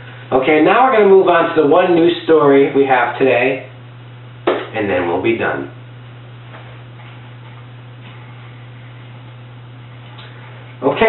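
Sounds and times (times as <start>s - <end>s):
low electrical hum and hiss: 0.0s - 11.0s.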